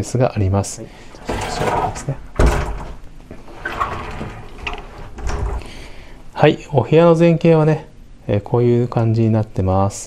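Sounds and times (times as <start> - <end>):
door handling noises: 1.2 - 5.8.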